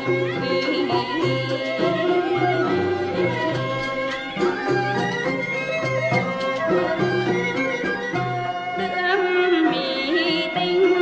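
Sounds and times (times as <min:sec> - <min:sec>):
traditional folk opera instrumental music: 0:00.0 - 0:11.0.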